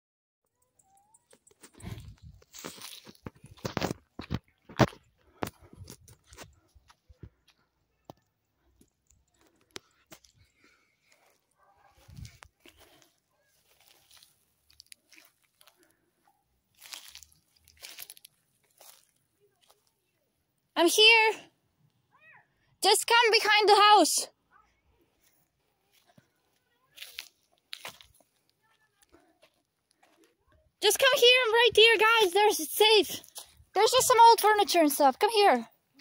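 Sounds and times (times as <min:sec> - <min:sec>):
footsteps crunching on vegetation: 0:01.7 - 0:07.6, 0:10.1 - 0:16.0, 0:16.7 - 0:19.9, 0:25.9 - 0:28.5.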